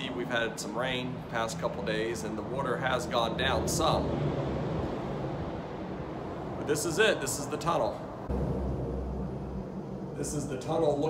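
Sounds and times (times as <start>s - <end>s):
traffic rumble overhead: 0.0s - 11.0s.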